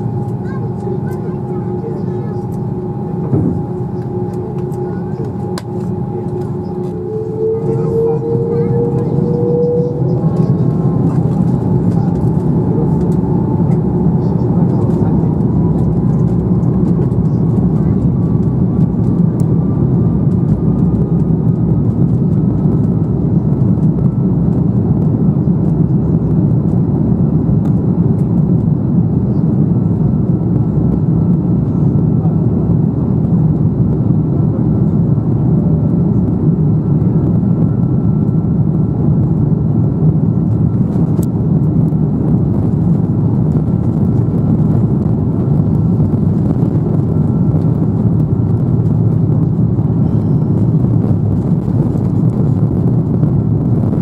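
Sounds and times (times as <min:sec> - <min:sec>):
jet engine whine: 0:00.0 - 0:54.0
low engine and runway noise: 0:00.0 - 0:54.0.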